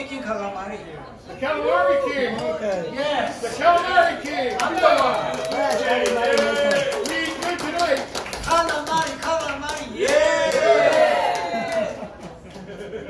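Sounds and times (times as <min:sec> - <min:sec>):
audience clapping: 0:02.3 - 0:13.0
people whooping and laughing: 0:10.0 - 0:13.0.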